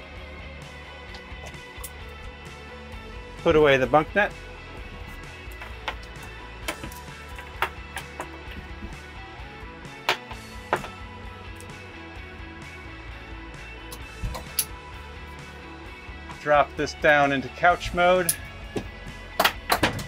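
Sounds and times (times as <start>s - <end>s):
soft background music: 0.0s - 20.0s
clips and carabiners clicking: 5.5s - 8.7s, 13.9s - 14.8s.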